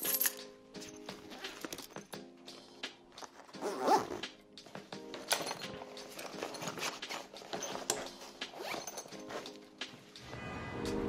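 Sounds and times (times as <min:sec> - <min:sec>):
zipper rasping: 0:00.8 - 0:02.2, 0:03.1 - 0:09.8.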